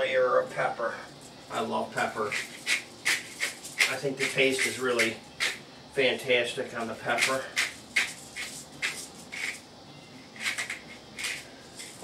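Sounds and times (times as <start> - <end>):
pepper mill grinding: 2.0 - 5.6, 7.1 - 9.7, 10.4 - 12.0.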